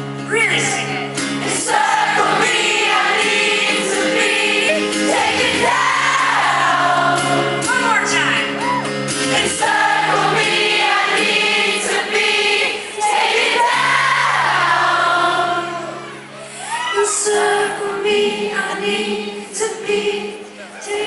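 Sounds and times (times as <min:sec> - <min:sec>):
acoustic guitar and band: 0:00.0 - 0:21.0
audience singing along: 0:01.4 - 0:07.7, 0:09.1 - 0:16.4, 0:17.0 - 0:21.0.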